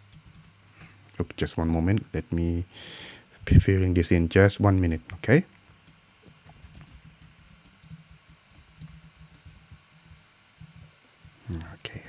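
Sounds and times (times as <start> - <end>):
typing on computer keyboard: 0.1 - 0.5, 5.8 - 9.8.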